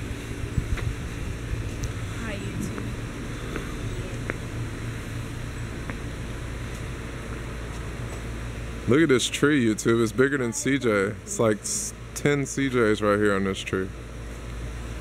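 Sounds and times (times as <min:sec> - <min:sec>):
low outdoor hum: 0:00.0 - 0:15.0.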